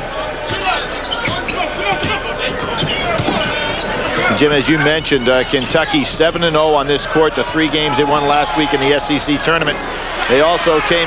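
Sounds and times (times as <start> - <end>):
arena crowd voices: 0.0 - 11.0.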